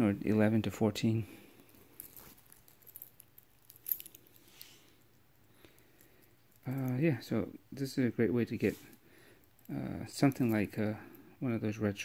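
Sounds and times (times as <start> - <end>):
metal watch bracelet clinking: 2.0 - 4.6.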